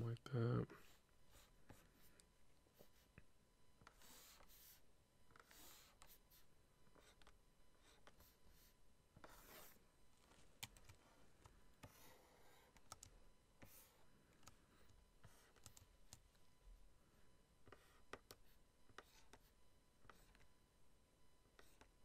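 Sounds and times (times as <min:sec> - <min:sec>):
stylus scratching on tablet: 0:00.6 - 0:03.2, 0:03.8 - 0:09.8, 0:11.8 - 0:14.1, 0:14.7 - 0:16.3, 0:17.6 - 0:20.5, 0:21.5 - 0:22.0.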